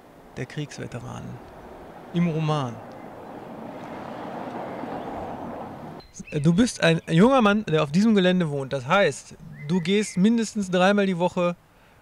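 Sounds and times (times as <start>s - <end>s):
car passing with tyre hiss: 1.3s - 6.0s.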